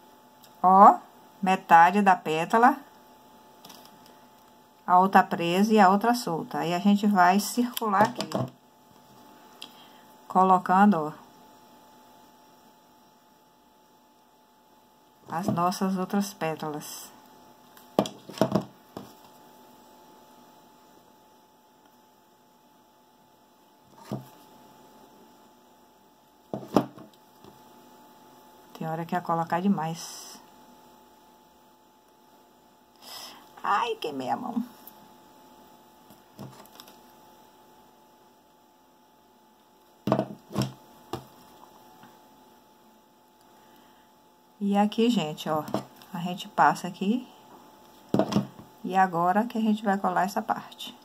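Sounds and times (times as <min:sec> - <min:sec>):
faint steady hum: 0:00.0 - 0:51.0.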